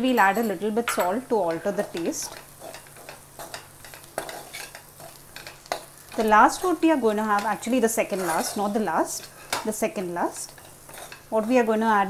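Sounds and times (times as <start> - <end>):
vegetables frying in a pan: 0.0 - 12.0.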